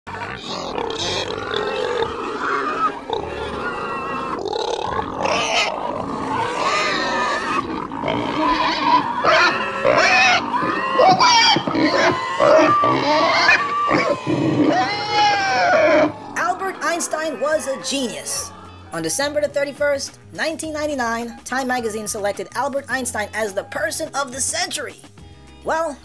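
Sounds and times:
pigs grunting and squealing: 0:00.1 - 0:19.0.

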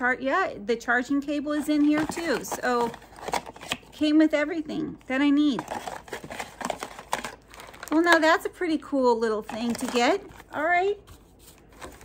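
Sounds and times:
cardboard packaging crinkling: 0:01.8 - 0:04.0, 0:05.4 - 0:08.5, 0:09.4 - 0:12.0.

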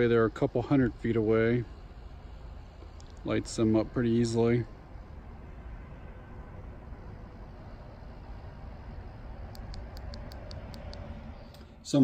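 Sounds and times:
low outdoor rumble: 0:00.0 - 0:12.0
high-pitched ticks: 0:09.5 - 0:11.6.

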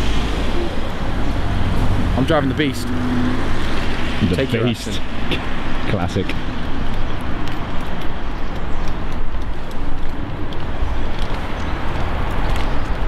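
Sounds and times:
heavy low rumble: 0:00.0 - 0:08.3
outdoor street noise: 0:00.0 - 0:13.0.

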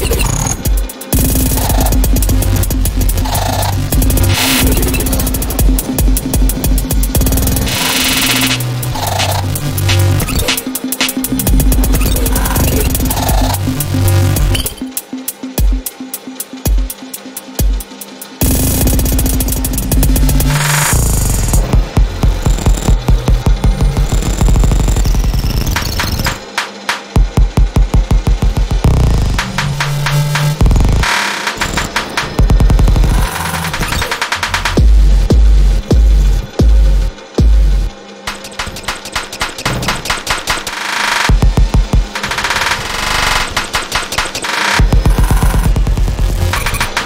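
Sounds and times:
heavy bass: 0:00.0 - 0:14.9, 0:17.6 - 0:26.5, 0:27.1 - 0:38.0, 0:41.3 - 0:43.7, 0:44.7 - 0:47.0
rapid stuttering clicks: 0:00.0 - 0:15.0, 0:18.3 - 0:34.9, 0:38.3 - 0:47.0
electronic percussive clicks: 0:00.0 - 0:47.0.

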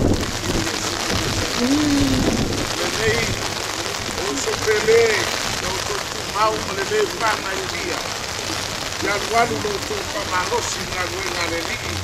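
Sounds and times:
rain falling on umbrellas: 0:00.0 - 0:12.0
people's voices: 0:00.4 - 0:03.4, 0:04.0 - 0:08.2, 0:08.9 - 0:12.0.

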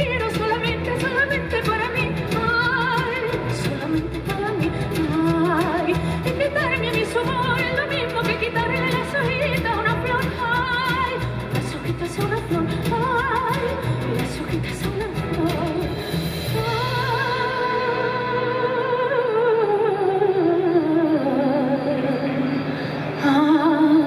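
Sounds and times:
double bass: 0:00.0 - 0:18.4
instrumental accompaniment: 0:00.0 - 0:23.9
woman singing with vibrato: 0:00.0 - 0:24.0.

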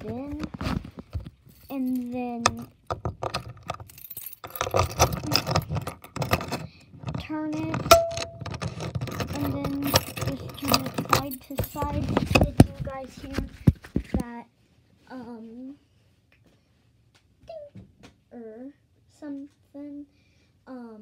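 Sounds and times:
sharp clicks and rattles: 0:00.0 - 0:14.2
keys jangling: 0:01.4 - 0:12.8.

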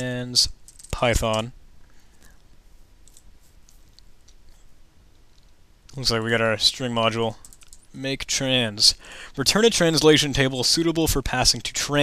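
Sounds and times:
man speaking: 0:00.0 - 0:01.6, 0:05.9 - 0:07.4, 0:08.0 - 0:12.0.

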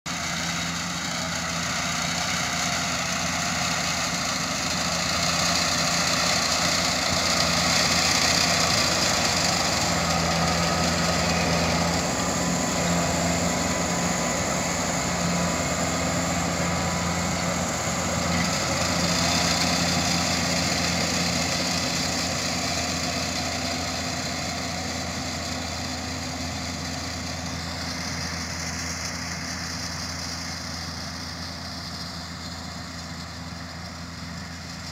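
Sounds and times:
combine harvester engine drone: 0:00.1 - 0:34.9.

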